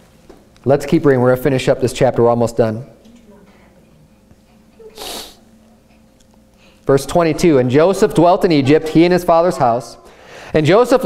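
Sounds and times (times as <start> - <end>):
faint room hum: 0.0 - 11.0
person sneezing: 4.8 - 5.5.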